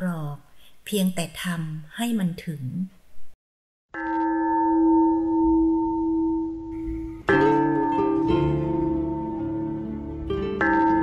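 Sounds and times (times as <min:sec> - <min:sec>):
bell ringing low tone: 0:04.0 - 0:11.0.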